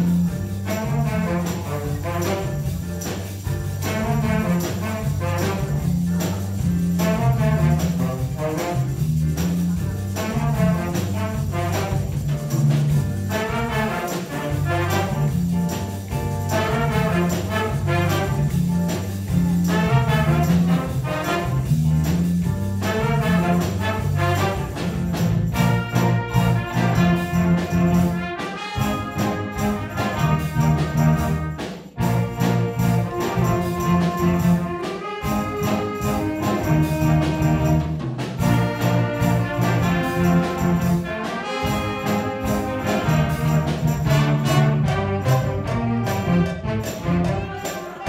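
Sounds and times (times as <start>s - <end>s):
horn section playing chords: 0.0s - 12.5s, 13.2s - 48.0s
bass guitar line: 0.0s - 47.7s
drum kit: 0.0s - 48.0s.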